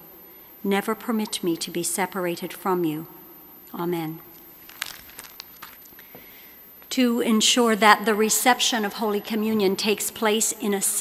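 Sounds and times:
soft clicks and rustles: 0:04.6 - 0:06.2.

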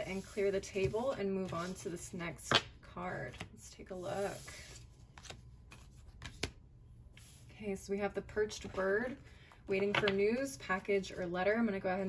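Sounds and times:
cards sliding across a table: 0:00.0 - 0:02.0, 0:04.0 - 0:06.5, 0:07.1 - 0:07.6.

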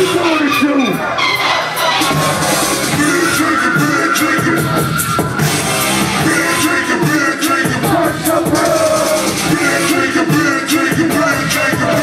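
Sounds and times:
loud live hip-hop music: 0:00.0 - 0:12.0.

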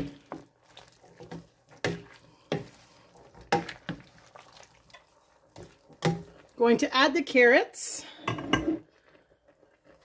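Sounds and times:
wooden spoon scraping pot: 0:00.0 - 0:07.1
faint sizzle: 0:00.0 - 0:10.0.

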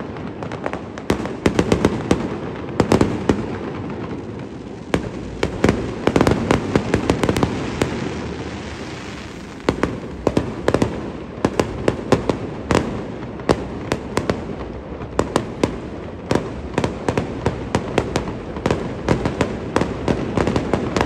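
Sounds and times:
fireworks cracking: 0:00.0 - 0:21.0
steady rushing noise: 0:04.2 - 0:13.1.

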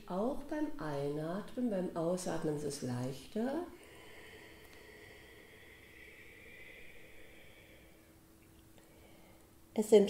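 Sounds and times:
soft hissing exhalation: 0:03.7 - 0:09.7.

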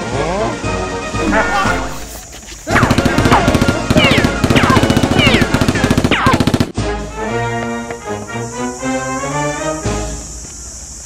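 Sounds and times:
background music: 0:00.0 - 0:02.2
rapid automatic gunfire effect: 0:02.7 - 0:06.8.

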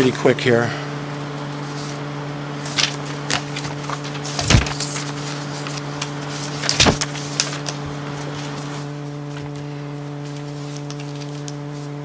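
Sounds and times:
electrical hum: 0:00.0 - 0:12.0
papers being handled: 0:01.2 - 0:12.0.

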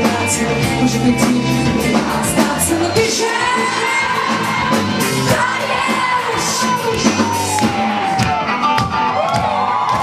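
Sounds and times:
woman singing: 0:00.0 - 0:07.9
live rock band playing: 0:00.0 - 0:10.0.

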